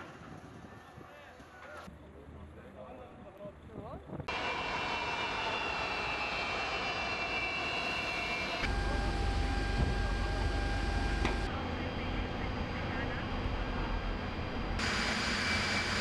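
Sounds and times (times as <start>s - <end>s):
jet engines whining: 4.3s - 16.0s
deep engine rumble: 8.6s - 16.0s.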